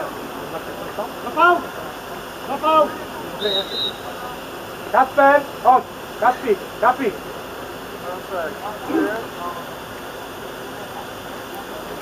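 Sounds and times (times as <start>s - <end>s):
outdoor hiss: 0.0s - 12.0s.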